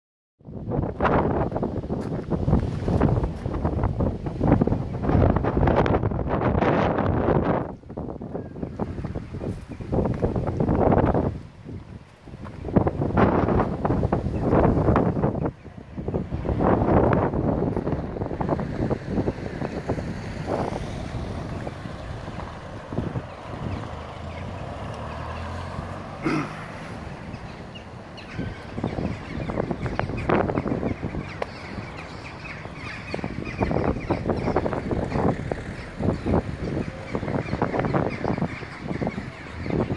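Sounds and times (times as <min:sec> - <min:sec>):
wind buffeting microphone: 0:00.4 - 0:39.9.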